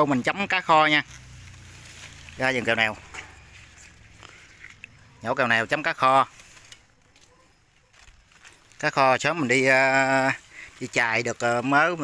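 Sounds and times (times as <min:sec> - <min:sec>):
plant stems rustling: 0:00.0 - 0:12.0
small clicks of stems pulled: 0:06.3 - 0:07.3.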